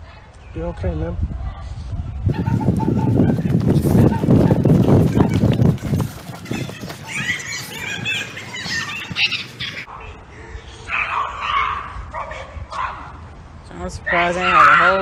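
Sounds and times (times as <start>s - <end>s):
distant group of people yelling: 2.3s - 9.2s.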